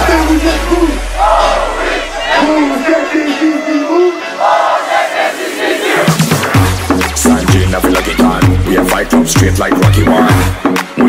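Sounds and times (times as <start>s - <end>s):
crowd shouting: 0.0s - 3.5s, 4.2s - 6.6s
dance music: 0.0s - 11.0s.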